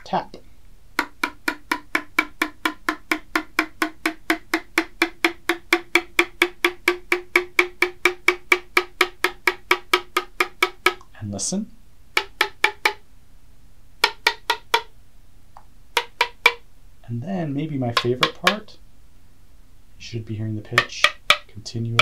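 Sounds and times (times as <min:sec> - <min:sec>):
spoon tapping ceramic mug: 0:17.9 - 0:18.6.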